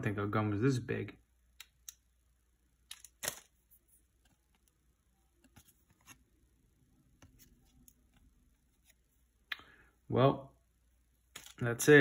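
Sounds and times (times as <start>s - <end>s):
paper wrapper handling clicks: 2.9s - 3.5s.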